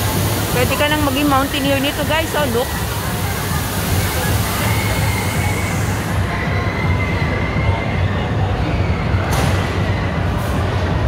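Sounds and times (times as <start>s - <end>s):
rushing indoor hall din: 0.0s - 11.0s.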